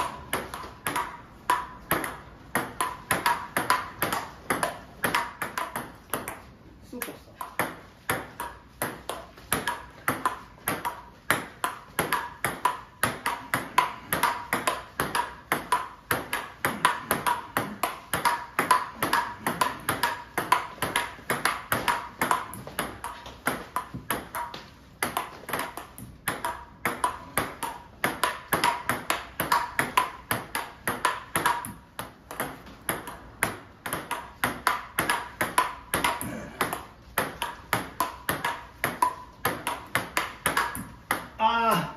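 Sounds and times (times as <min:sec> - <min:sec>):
ping-pong ball clicking: 0:00.0 - 0:41.4.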